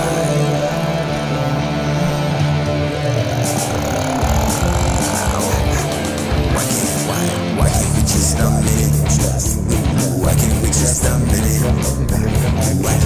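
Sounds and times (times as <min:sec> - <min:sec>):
distorted guitar and bass: 0:00.0 - 0:13.0.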